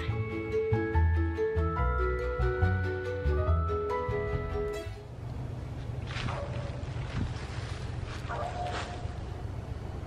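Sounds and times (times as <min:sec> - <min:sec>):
wind buffeting microphone: 0:06.0 - 0:10.0.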